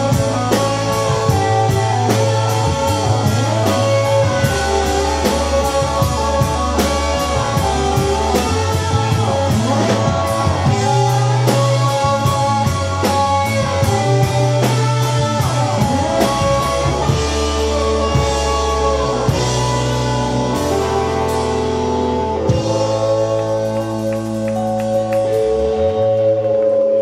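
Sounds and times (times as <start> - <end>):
drums and cymbals: 0.0 - 25.9
bass guitar: 0.0 - 27.0
electric guitar bent notes: 0.0 - 27.0.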